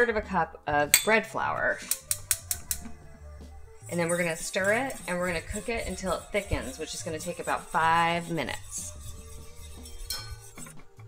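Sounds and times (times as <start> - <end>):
whisk clicking against saucepan: 4.0 - 10.8.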